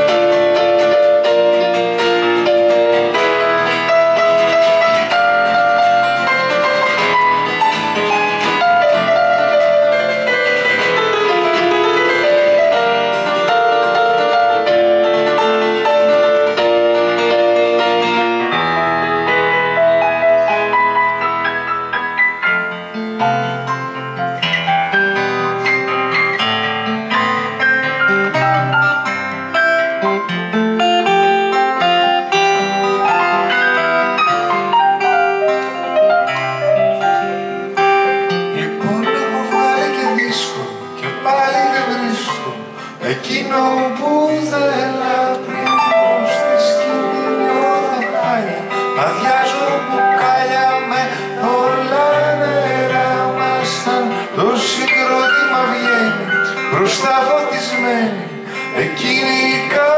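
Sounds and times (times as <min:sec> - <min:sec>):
acoustic guitar chords: 0:00.0 - 0:59.9
keyboard piano melody: 0:00.0 - 0:59.9
man singing: 0:38.3 - 0:59.9.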